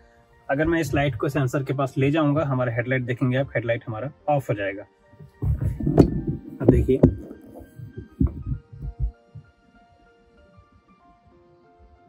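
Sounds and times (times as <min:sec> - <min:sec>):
soft background music: 0:00.0 - 0:12.0
phone handling thumps: 0:05.3 - 0:09.2.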